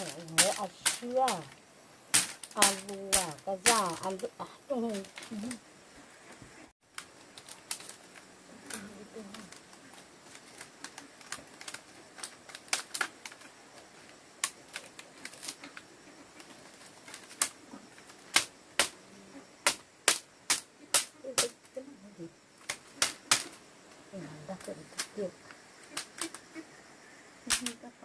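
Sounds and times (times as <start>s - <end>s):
machete striking bamboo: 0.0s - 4.2s, 18.2s - 19.0s, 19.6s - 21.6s, 22.6s - 23.6s
bamboo strips clicking: 0.0s - 4.3s, 6.9s - 19.0s, 19.6s - 21.8s, 22.6s - 23.6s, 25.8s - 26.4s, 27.5s - 27.8s.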